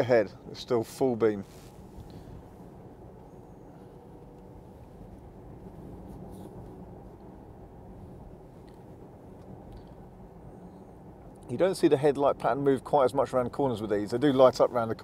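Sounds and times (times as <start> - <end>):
road and tyre rumble: 0.0 - 15.0.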